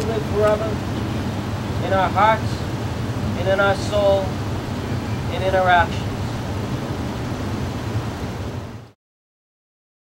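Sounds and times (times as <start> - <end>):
outdoor background low rumble: 0.0 - 9.0.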